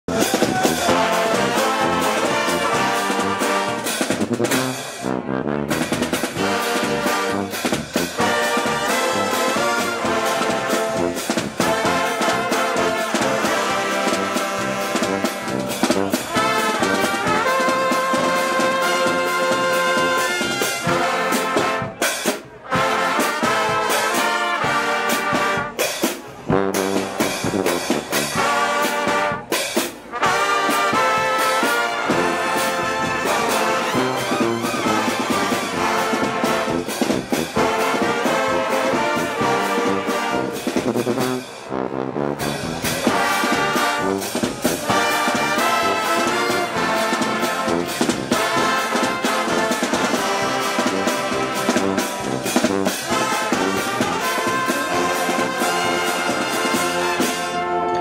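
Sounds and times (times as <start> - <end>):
brass band playing: 0.0 - 58.0.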